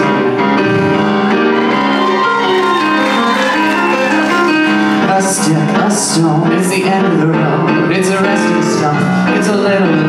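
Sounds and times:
grand piano playing chords: 0.0s - 10.0s.

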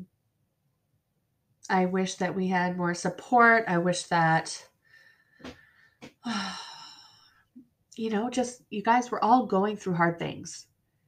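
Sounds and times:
woman sighing: 6.2s - 7.3s.

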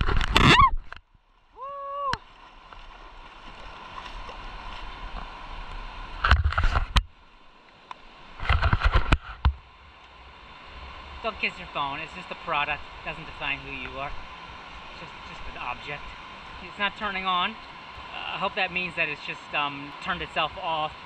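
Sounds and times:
river running over stones: 0.0s - 21.0s.

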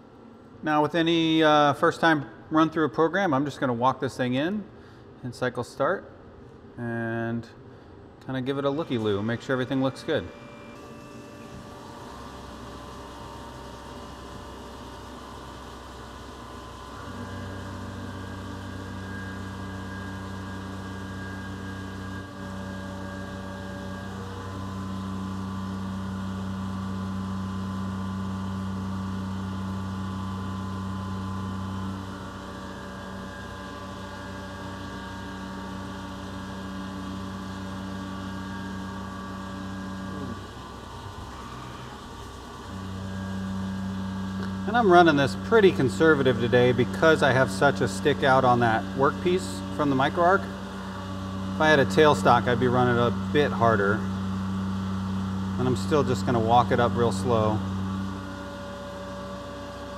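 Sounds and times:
mill machine humming: 8.2s - 59.9s
end mill cutting aluminum: 8.7s - 27.4s, 28.1s - 59.9s.

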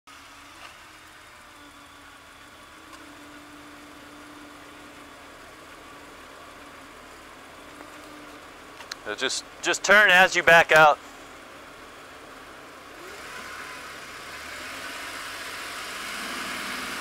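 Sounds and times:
car engine idling: 0.1s - 17.0s.

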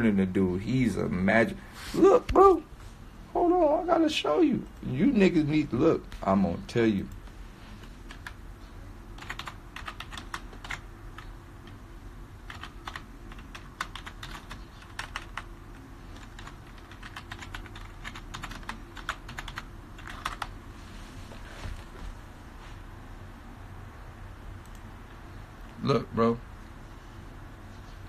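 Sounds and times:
low steady hum: 0.0s - 28.0s
keyboard typing clicks: 9.2s - 11.8s.

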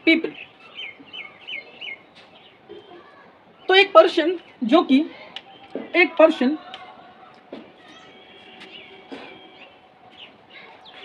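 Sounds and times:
small bird chirping: 0.3s - 3.8s.

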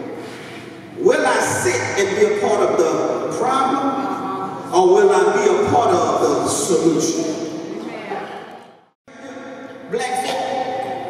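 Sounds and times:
man preaching into microphone: 1.0s - 7.6s, 9.1s - 11.0s.

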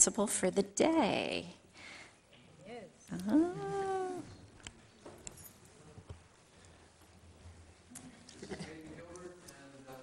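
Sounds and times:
woman's drawn-out uh: 3.1s - 4.3s.

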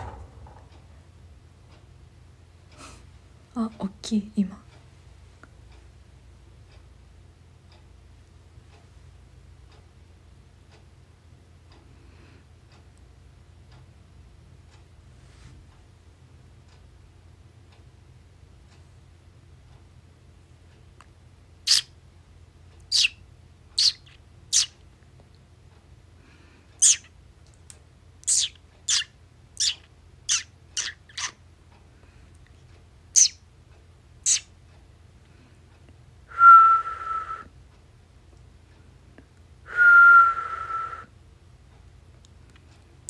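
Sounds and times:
person whistling held notes: 36.3s - 37.5s, 39.7s - 41.1s.

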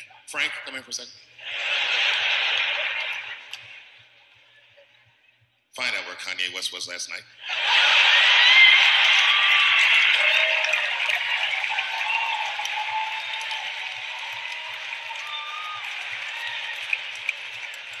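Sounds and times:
audience applauding and cheering: 1.4s - 3.9s, 7.4s - 18.0s.

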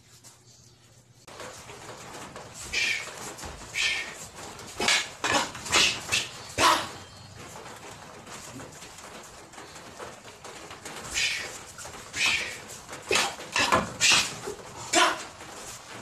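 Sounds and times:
training sticks clacking: 1.3s - 16.0s.

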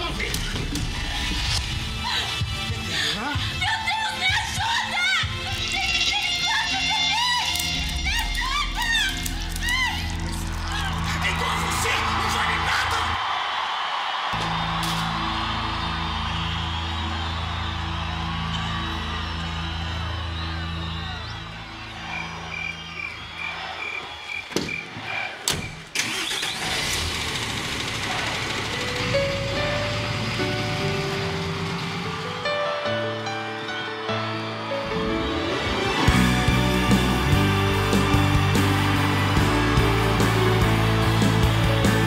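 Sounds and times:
background music: 0.0s - 24.3s, 28.1s - 42.0s.

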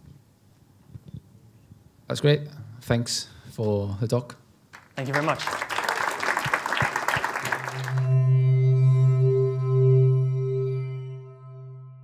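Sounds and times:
audience applauding: 4.7s - 8.2s
held synthesized chord: 7.6s - 12.0s.

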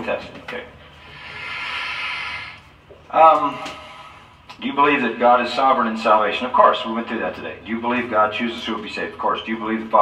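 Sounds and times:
man breathing out: 0.9s - 2.8s, 3.5s - 4.4s.

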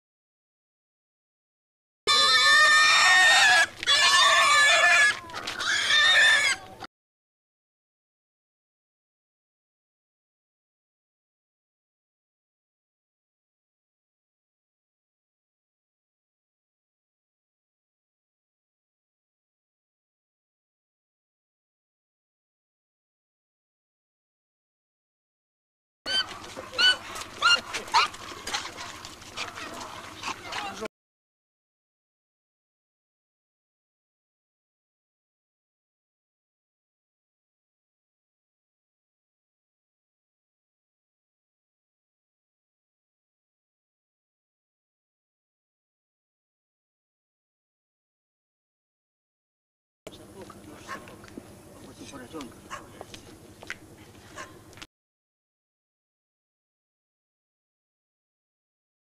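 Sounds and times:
pig squealing: 2.1s - 6.7s, 26.1s - 30.8s.

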